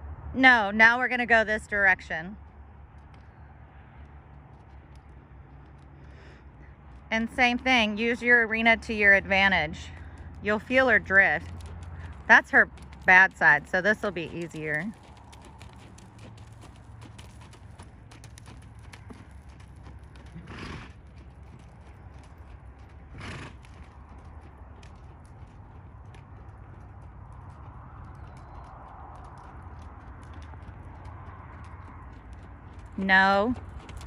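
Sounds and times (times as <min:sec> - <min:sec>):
hoofbeats on sand: 0:03.0 - 0:34.0.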